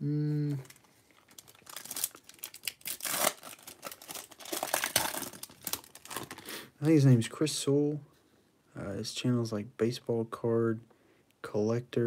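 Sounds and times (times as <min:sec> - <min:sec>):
foil wrapper tearing and crinkling: 0:00.6 - 0:06.5.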